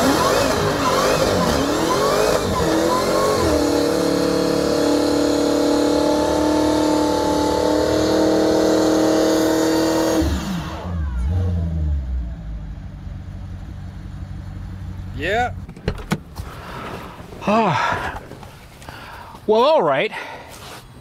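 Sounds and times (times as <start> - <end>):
car engine at high revs: 0.0 - 15.2.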